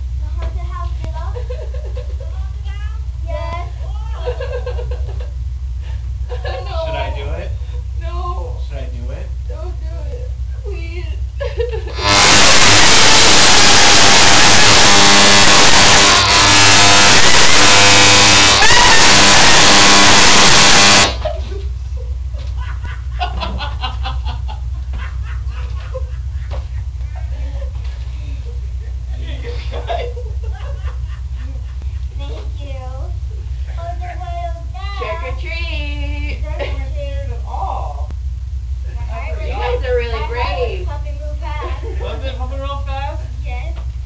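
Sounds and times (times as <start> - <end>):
steady low hum: 0.0 - 44.0
fog machine hissing blast: 11.9 - 21.4.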